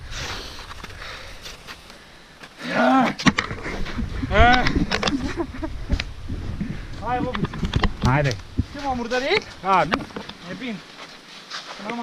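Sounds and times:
faint wind rush: 3.3s - 11.0s.

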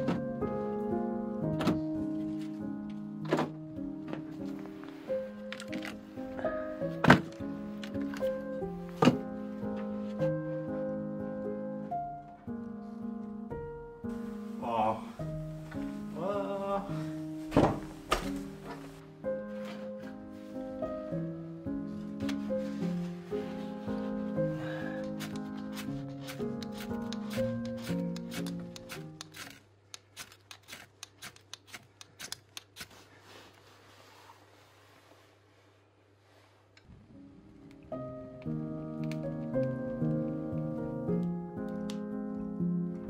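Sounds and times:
background music with held notes: 0.0s - 29.4s, 36.9s - 43.0s.

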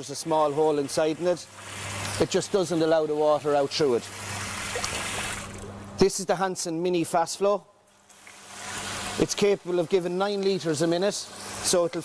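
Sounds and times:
water hissing through float valve: 0.3s - 5.6s, 8.1s - 12.0s.

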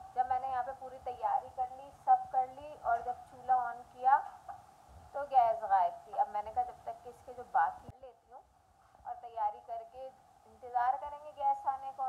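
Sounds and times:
woman talking: 0.0s - 4.4s, 5.2s - 8.4s, 9.1s - 12.0s.

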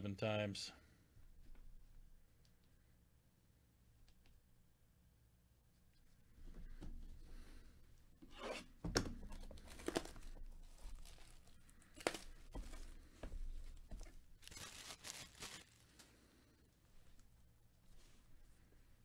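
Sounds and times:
plastic shrink-wrap tearing: 9.6s - 12.9s, 14.0s - 16.1s.

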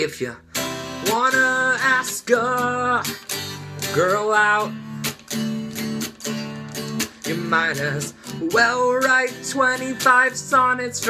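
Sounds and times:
guitar strumming chords: 0.0s - 11.0s.

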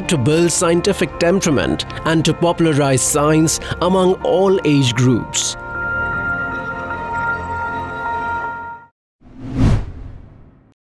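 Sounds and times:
whoosh with deep boom: 9.3s - 10.8s.

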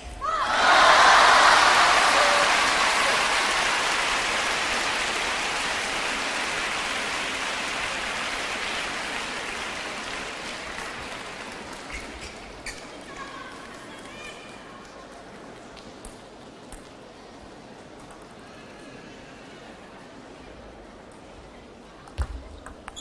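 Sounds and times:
spectators applauding: 0.4s - 12.2s.

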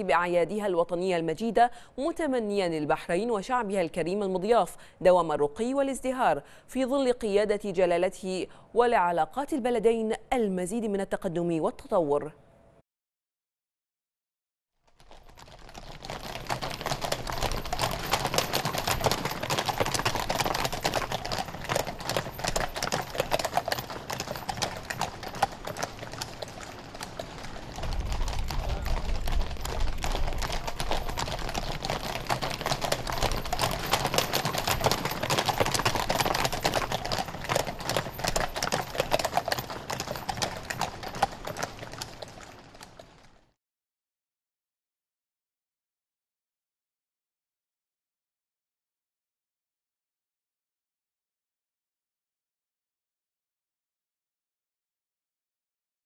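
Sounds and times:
horse hooves clip-clopping on pavement: 14.9s - 43.6s.

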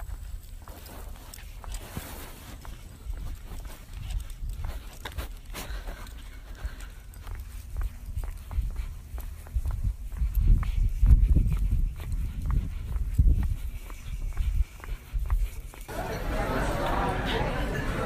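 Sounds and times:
footsteps on pavement: 0.0s - 16.0s
wind rumbling on microphone: 7.7s - 15.8s.

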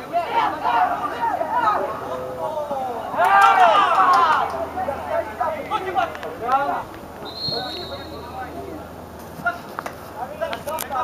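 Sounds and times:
players shouting: 0.0s - 9.7s
referee's whistle: 7.2s - 8.4s.

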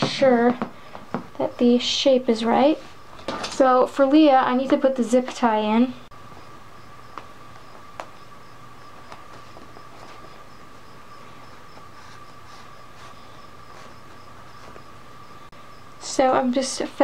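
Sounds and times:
background hum: 0.0s - 17.0s
faint constant tone: 0.0s - 17.0s.

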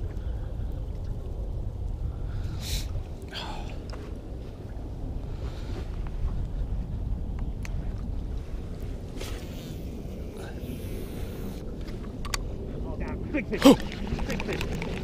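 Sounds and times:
wind buffeting microphone: 0.0s - 15.0s
waves slapping boat hull: 13.1s - 15.0s.

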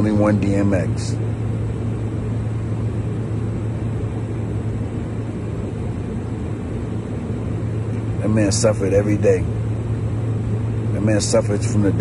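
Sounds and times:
low hum: 0.0s - 12.0s
low rumble: 0.0s - 12.0s.

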